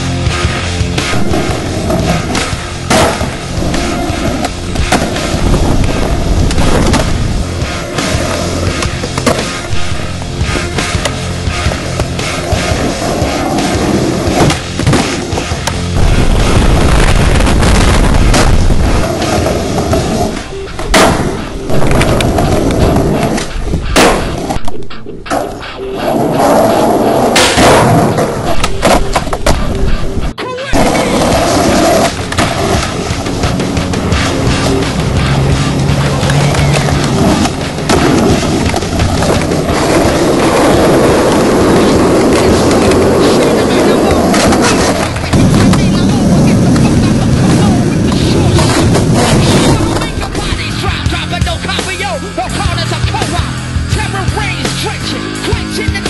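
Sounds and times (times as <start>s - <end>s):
skateboard wheels rolling on pavement: 0.0s - 53.4s
background music: 0.0s - 56.0s
skateboard clacks: 0.5s - 16.0s, 18.3s - 52.0s.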